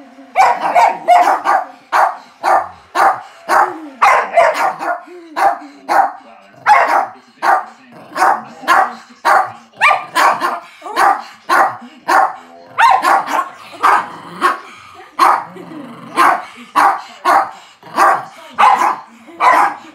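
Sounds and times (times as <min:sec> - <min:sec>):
dogs barking: 0:00.4 - 0:19.9.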